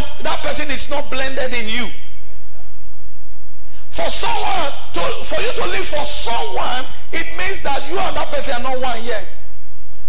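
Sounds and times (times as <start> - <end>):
man speaking: 0.0 - 2.1, 3.9 - 9.4
steady low hum: 0.0 - 10.0.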